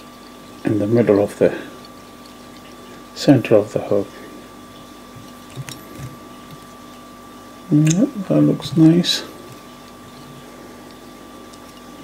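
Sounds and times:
steady faint hum: 0.0 - 12.0.

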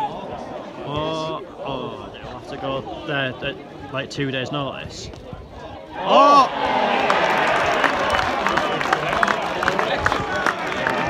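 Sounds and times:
crowd cheering and shouting: 5.8 - 11.0.

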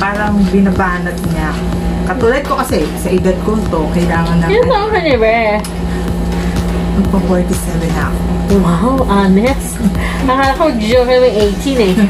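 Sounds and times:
woman speaking: 0.0 - 5.8, 6.9 - 12.0
steady low hum: 0.0 - 12.0.

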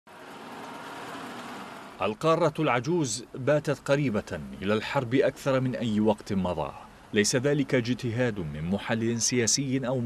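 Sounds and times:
truck engine rumbling: 0.1 - 10.0.

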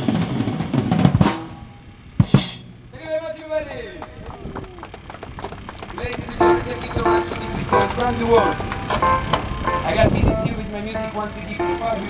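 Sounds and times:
drum kit: 0.0 - 3.2, 6.2 - 9.9
crowd hand claps: 3.0 - 10.0
man's voice: 6.0 - 8.7, 9.8 - 12.0.

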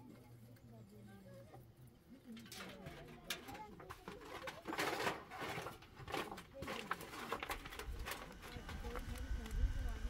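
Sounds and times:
aluminium foil crinkling: 2.4 - 9.2.

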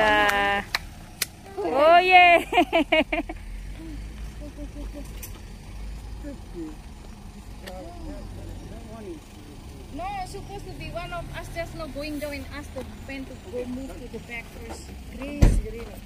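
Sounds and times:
car engine idling: 0.0 - 16.0
person laughing loudly: 2.3 - 3.4, 4.3 - 5.2.

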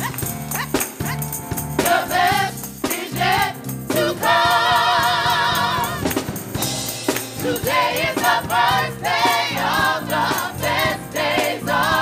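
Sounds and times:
sharp percussive beat: 0.0 - 12.0
gospel choir singing: 1.8 - 12.0.

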